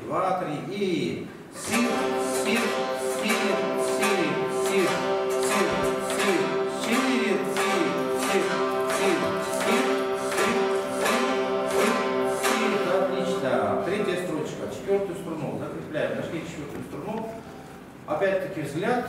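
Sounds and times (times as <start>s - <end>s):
plucked zithers playing: 1.6s - 15.4s.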